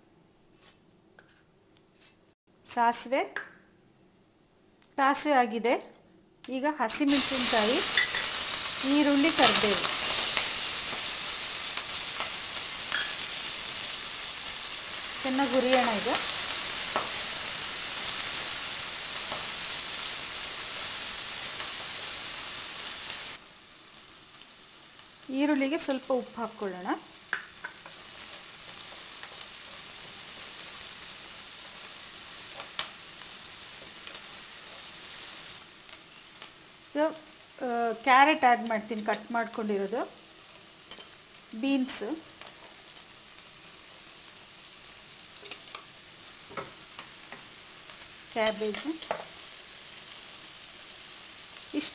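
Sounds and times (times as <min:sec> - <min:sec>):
onions sizzling in hot oil: 0:06.4 - 0:51.9.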